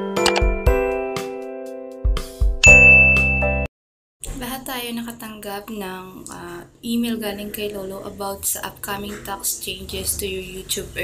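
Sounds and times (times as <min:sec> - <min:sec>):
short clicks: 0:00.2 - 0:00.5
bright bell-like ding: 0:02.6 - 0:03.7.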